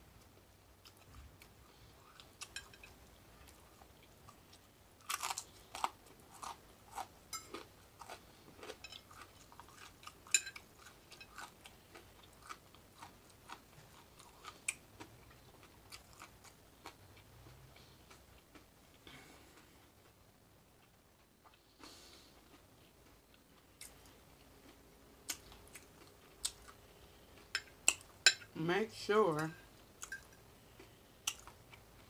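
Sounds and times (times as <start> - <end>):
person chewing crispy bacon: 0.8 - 18.6, 21.4 - 26.8, 30.8 - 32.0.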